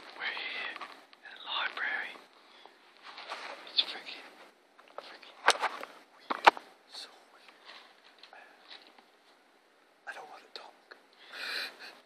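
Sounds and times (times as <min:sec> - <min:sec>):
man whispering: 0:00.0 - 0:02.3, 0:03.6 - 0:08.8, 0:10.0 - 0:11.0.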